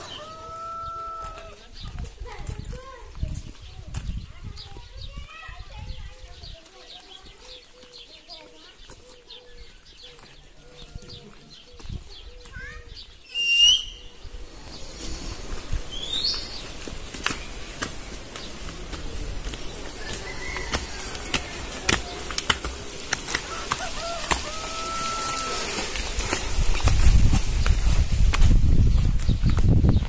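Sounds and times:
birds calling and chirping: 0.0 - 30.0.

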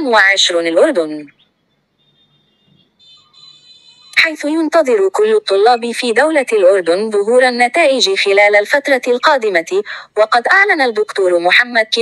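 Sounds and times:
high-pitched electronic tones: 1.3 - 4.3.

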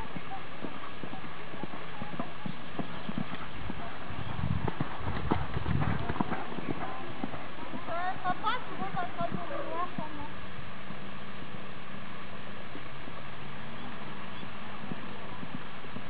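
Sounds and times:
hooves thudding on sand: 0.0 - 16.0.

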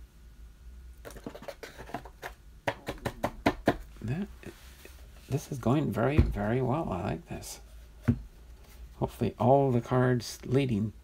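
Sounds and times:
cards clicking and tapping: 1.1 - 3.8.

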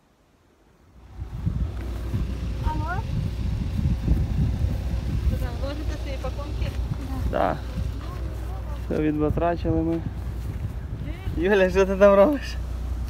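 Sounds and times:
wind buffeting microphone: 0.9 - 13.0
voices: 1.8 - 13.0.

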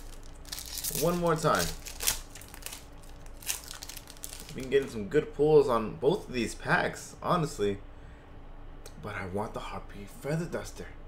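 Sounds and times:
foil wrapper crinkling and tearing: 0.0 - 4.9.

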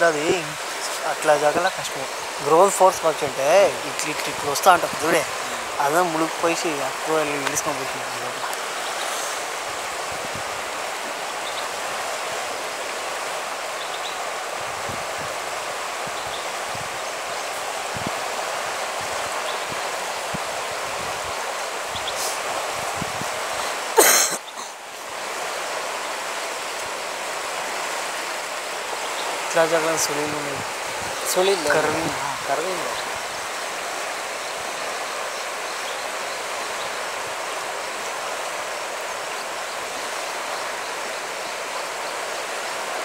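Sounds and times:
river rushing in flood: 0.0 - 43.0.

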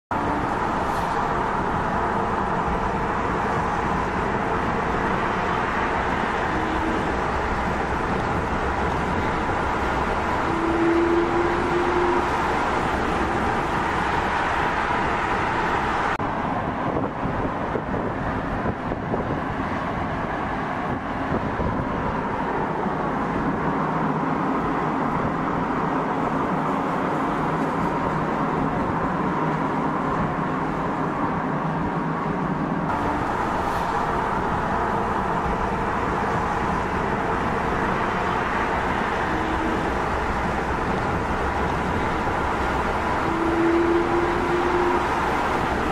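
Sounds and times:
cars driving on highway: 0.1 - 45.9.

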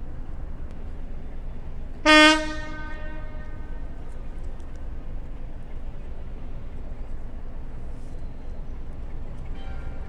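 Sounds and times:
locomotive horn blast: 2.0 - 4.0.

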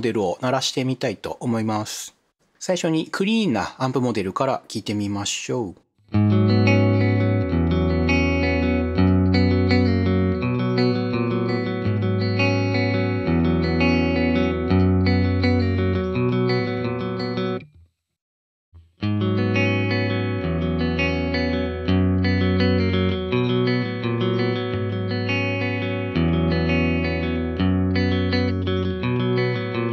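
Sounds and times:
clean electric guitar chords: 6.1 - 17.7, 18.9 - 29.9.

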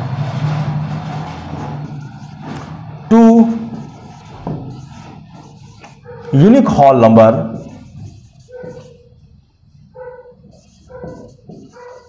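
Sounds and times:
marker scratching on whiteboard: 1.8 - 12.0.

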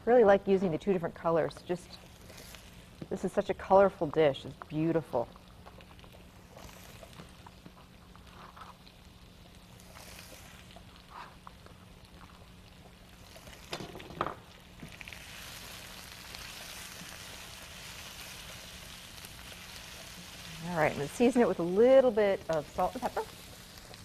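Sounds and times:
vegetables sizzling in oil: 0.0 - 24.0.

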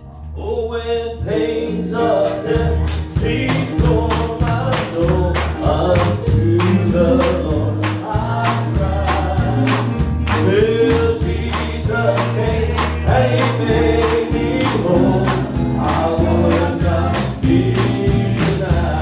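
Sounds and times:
voices singing gospel: 0.4 - 19.0
band with steady beat and bass: 1.3 - 19.0
hands clapping: 3.5 - 18.8.

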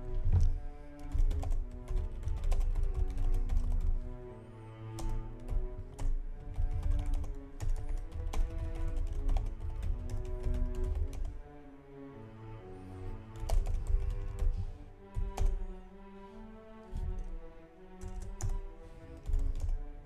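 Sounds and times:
soft background music: 0.0 - 20.0
keyboard typing: 1.0 - 3.9, 5.0 - 11.3, 13.4 - 14.5, 15.2 - 15.6, 18.0 - 18.6, 19.2 - 19.7.

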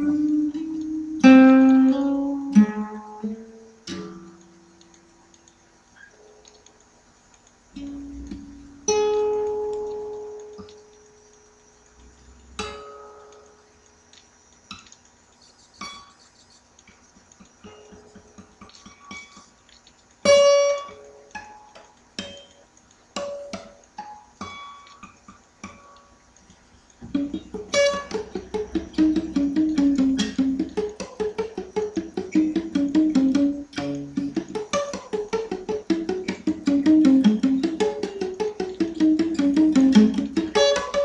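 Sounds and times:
slow blues acoustic guitar: 0.0 - 5.2, 7.7 - 11.3, 12.0 - 13.6, 17.6 - 19.6, 20.2 - 22.6, 23.2 - 26.1, 27.0 - 41.0.

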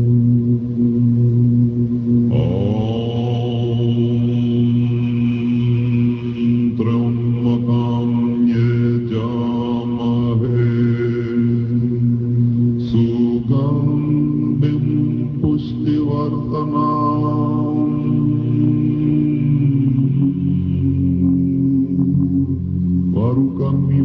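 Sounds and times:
group chanting in deep voices: 2.1 - 24.0.

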